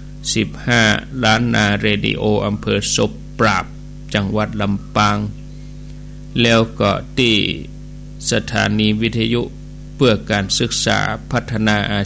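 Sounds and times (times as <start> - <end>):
electrical mains hum: 0.0 - 12.0
man speaking: 0.2 - 5.4, 6.4 - 12.0.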